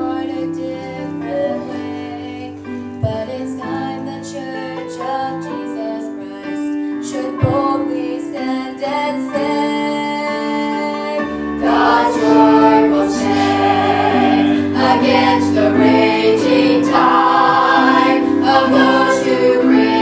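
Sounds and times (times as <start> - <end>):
woman singing into microphone: 0.0 - 11.3
instrumental accompaniment: 10.6 - 20.0.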